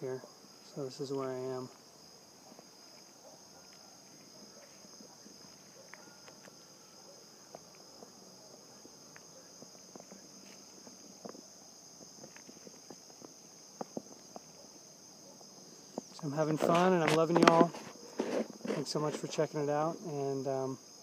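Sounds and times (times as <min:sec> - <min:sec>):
insects chirring: 0:00.0 - 0:21.0.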